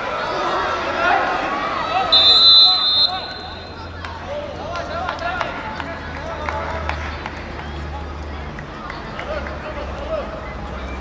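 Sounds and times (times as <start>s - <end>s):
distant shouting voices: 0.0s - 11.0s.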